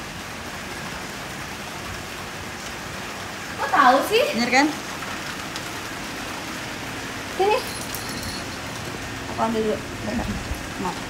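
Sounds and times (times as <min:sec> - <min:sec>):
woman speaking: 0:03.6 - 0:04.8, 0:07.4 - 0:07.8, 0:09.3 - 0:11.0.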